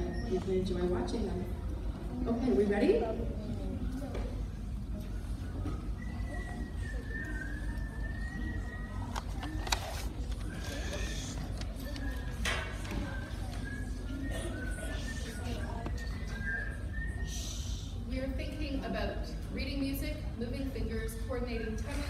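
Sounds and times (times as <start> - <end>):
murmur of children: 0.0 - 22.0.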